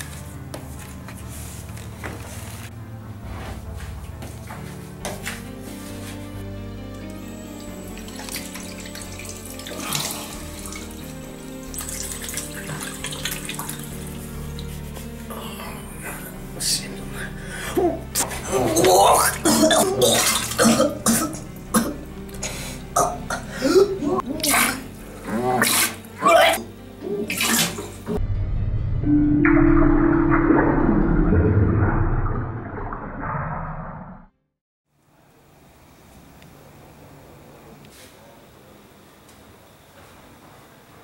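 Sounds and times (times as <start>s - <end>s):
music with long sustained notes: 0.0s - 31.4s
man vomiting into a toilet: 17.8s - 22.1s, 25.5s - 28.0s
water splashing: 19.3s - 20.7s.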